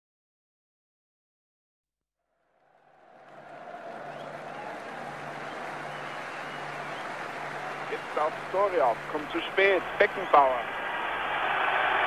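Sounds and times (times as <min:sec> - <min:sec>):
stadium crowd murmur: 0:02.9 - 0:12.0.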